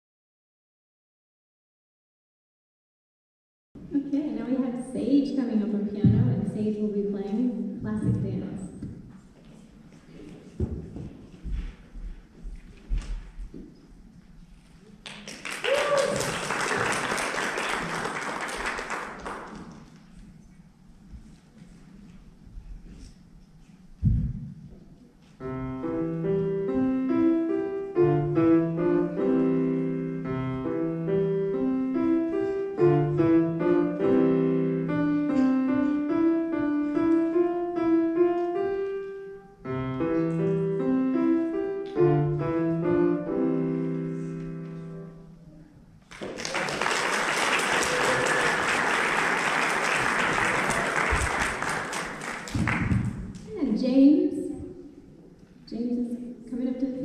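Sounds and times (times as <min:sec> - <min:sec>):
voice: 0:03.9 - 0:08.7
audience applause: 0:15.0 - 0:20.1, 0:46.0 - 0:53.4
grand piano playing: 0:25.4 - 0:45.6.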